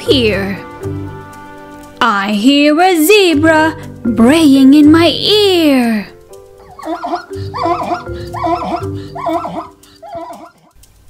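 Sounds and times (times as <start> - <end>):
soft background music: 0.0 - 11.0
zebra braying: 6.6 - 10.8.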